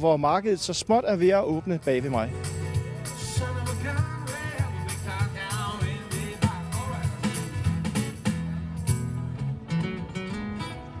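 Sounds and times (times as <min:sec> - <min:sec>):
keyboard-led music: 0:01.2 - 0:11.0
bass line: 0:02.1 - 0:10.5
drum beat: 0:02.3 - 0:08.4
man singing into microphone: 0:02.9 - 0:07.7.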